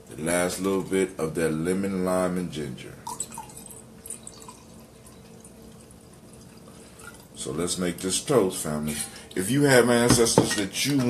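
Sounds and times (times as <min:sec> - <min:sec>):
liquid pouring into a glass: 0:03.0 - 0:07.4.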